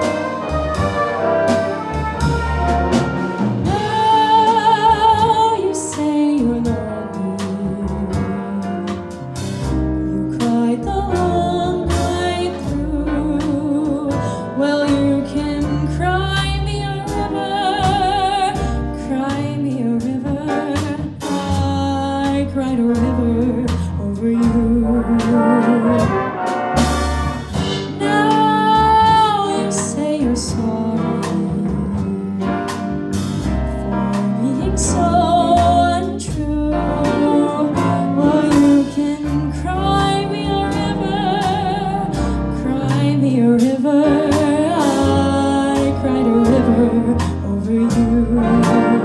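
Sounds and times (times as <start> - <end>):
jazz big band ballad: 0.0 - 49.0.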